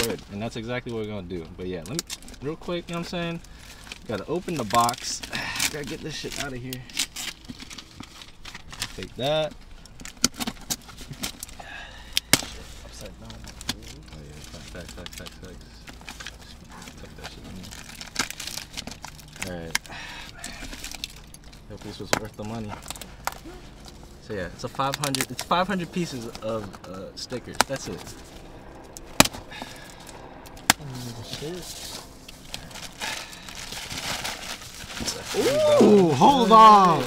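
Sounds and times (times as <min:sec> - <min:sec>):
cardboard package clicking and rattling: 0:03.7 - 0:23.6, 0:28.8 - 0:37.0.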